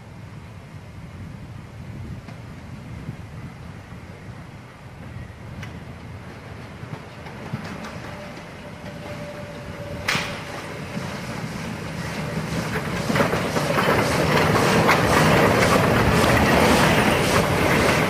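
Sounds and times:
steam locomotive passing: 0.0 - 18.0
rhythmic train clatter: 4.8 - 18.0.

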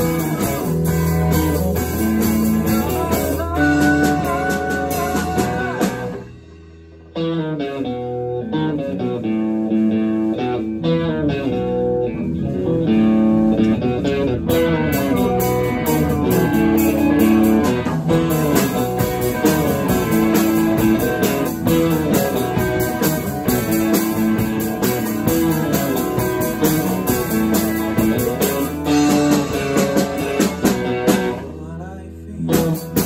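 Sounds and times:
live rock band playing: 0.0 - 33.0
picked electric guitar notes: 0.0 - 33.0.

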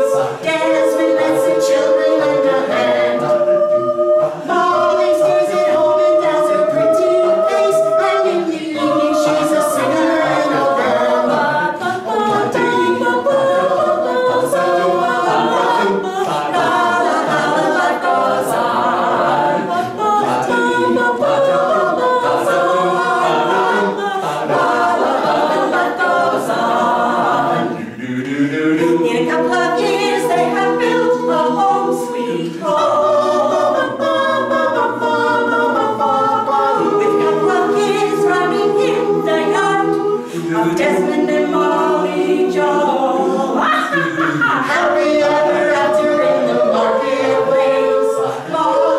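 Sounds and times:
mixed voices singing in harmony: 0.0 - 48.9.

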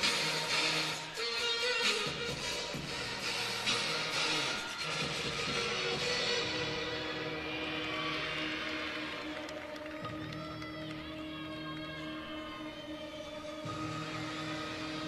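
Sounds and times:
gymnastics routine music: 0.0 - 15.0.

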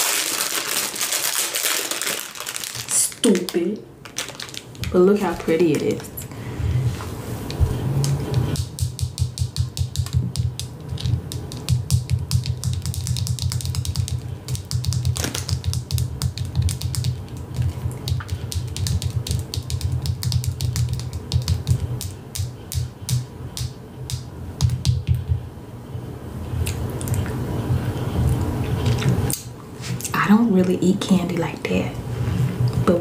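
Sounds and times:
fingernails tapping on hard candy: 8.6 - 25.4.

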